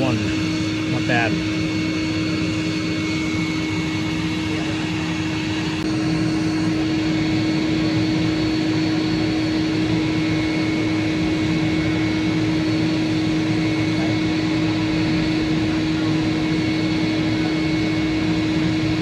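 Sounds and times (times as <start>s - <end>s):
vacuums droning: 0.0s - 19.0s.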